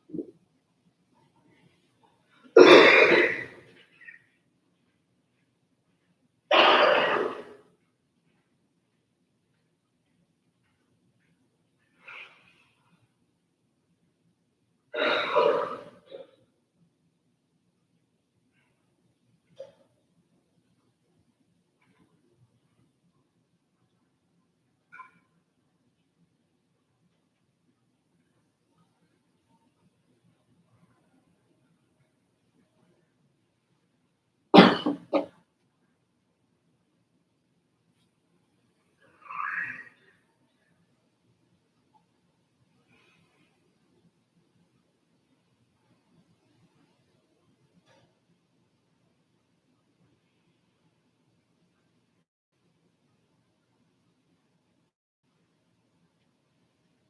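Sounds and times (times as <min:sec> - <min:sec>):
person coughing: 0:02.6 - 0:04.2, 0:06.5 - 0:07.6, 0:15.0 - 0:16.4, 0:34.6 - 0:35.3.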